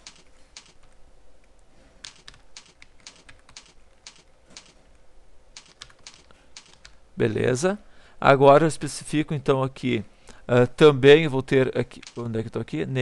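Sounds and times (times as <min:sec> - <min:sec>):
keyboard typing clicks: 0:00.0 - 0:01.0, 0:02.0 - 0:04.8, 0:05.6 - 0:07.0, 0:12.0 - 0:12.3.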